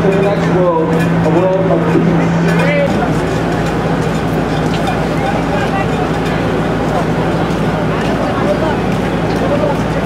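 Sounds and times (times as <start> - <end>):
faint voices: 0.0 - 10.0
low engine hum: 0.0 - 10.0
street ambience: 0.0 - 10.0.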